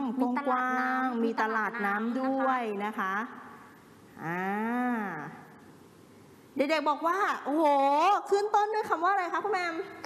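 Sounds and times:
woman humming: 4.2s - 5.4s.

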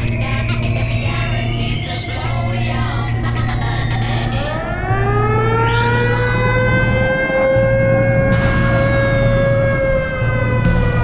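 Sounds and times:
gliding synth tones: 0.0s - 11.0s
steady bass: 0.0s - 11.0s.

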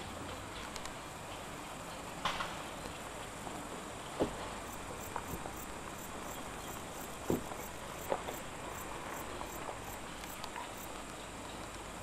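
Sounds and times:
steady background hiss: 0.0s - 12.0s
insects chirping faintly: 3.9s - 12.0s.

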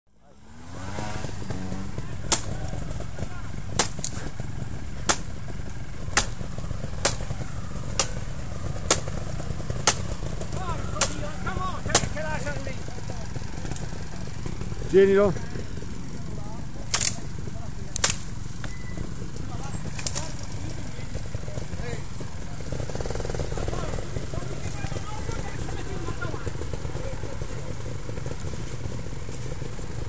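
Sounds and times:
motorcycles idling: 0.1s - 30.0s
blade chopping a branch: 1.5s - 4.4s, 5.0s - 12.5s, 16.9s - 17.3s, 17.9s - 18.8s, 19.8s - 20.6s.

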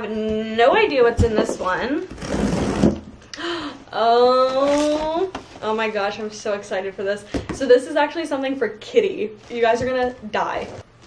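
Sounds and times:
cardboard rustling: 9.4s - 11.0s.

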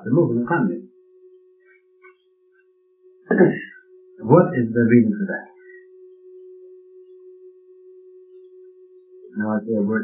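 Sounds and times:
tape recorder hum: 0.0s - 10.0s.

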